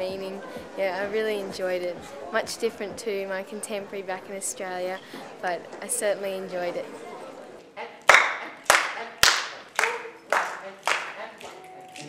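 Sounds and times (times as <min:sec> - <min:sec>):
hands clapping a steady beat: 0:08.1 - 0:12.0.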